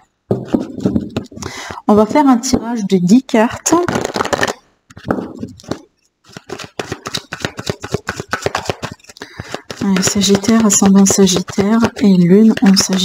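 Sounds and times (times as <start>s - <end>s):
card deck being shuffled: 3.6s - 13.0s.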